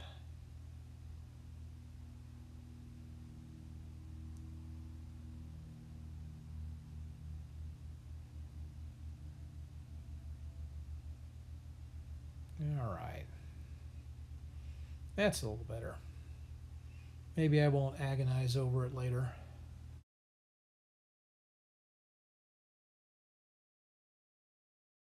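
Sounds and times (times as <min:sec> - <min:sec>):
low hum throbbing: 0:00.0 - 0:20.0.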